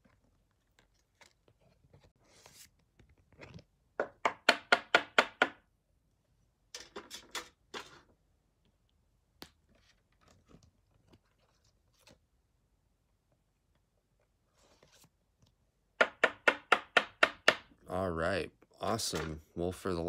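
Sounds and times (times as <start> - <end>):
trading cards and plastic handled: 0.0 - 3.7, 9.5 - 12.4.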